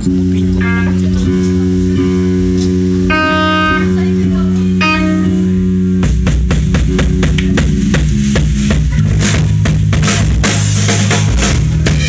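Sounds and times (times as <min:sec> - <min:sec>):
fast drum kit beats: 0:00.0 - 0:12.0
rock band playing live: 0:00.0 - 0:12.0.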